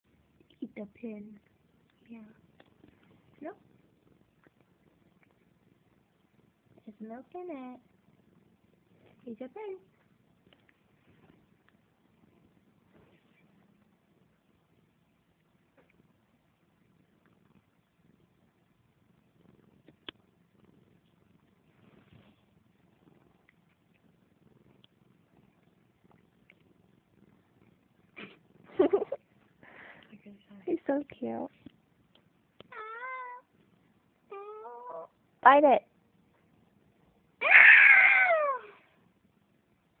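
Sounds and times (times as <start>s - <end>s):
cat purring: 0.0s - 37.5s, 38.3s - 40.0s
cat meowing: 32.7s - 33.4s, 37.4s - 38.8s.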